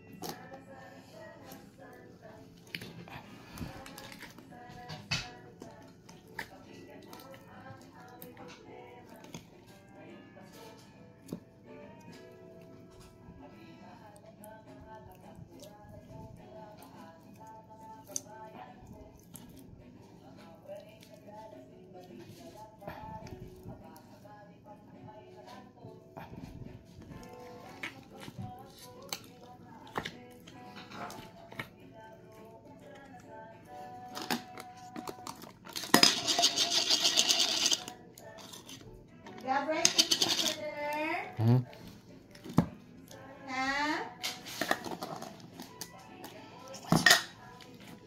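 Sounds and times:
faint background music: 0.0 - 48.0.

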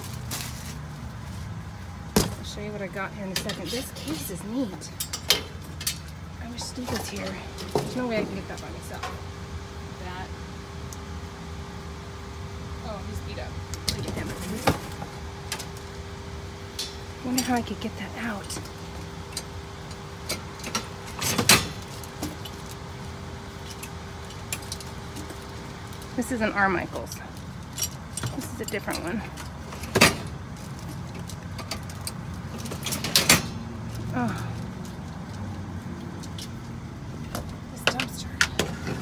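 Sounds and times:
trash clattering: 0.0 - 9.2, 13.8 - 15.9.

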